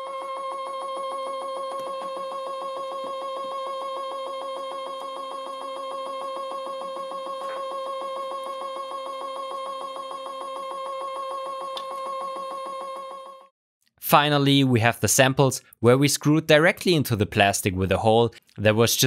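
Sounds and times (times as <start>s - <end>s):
stepper motor whining and pulsing: 0.0s - 13.5s.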